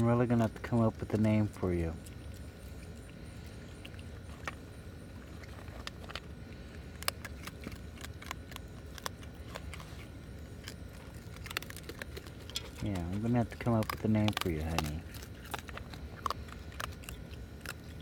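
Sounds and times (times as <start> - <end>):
animal crunching kibble: 0.0 - 18.0
low steady hum: 0.0 - 18.0.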